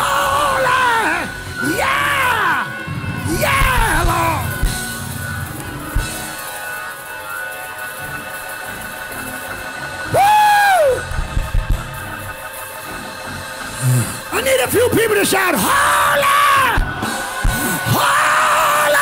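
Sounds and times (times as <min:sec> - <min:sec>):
person preaching: 0:00.0 - 0:04.6, 0:13.9 - 0:19.0
church music with drums: 0:00.0 - 0:19.0
person crying out: 0:10.1 - 0:11.0.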